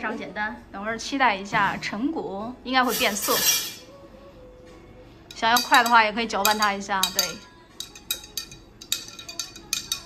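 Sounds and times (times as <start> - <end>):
spoon clinking against glass: 2.9 - 3.9, 5.3 - 10.0
spoon stirring in water: 5.3 - 10.0.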